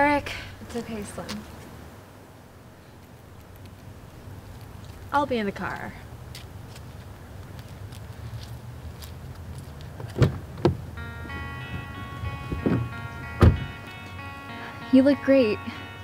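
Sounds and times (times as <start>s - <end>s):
car door thudding: 10.2s - 10.8s, 12.4s - 13.8s
low steady hum: 10.9s - 16.0s
soft guitar music: 11.0s - 16.0s.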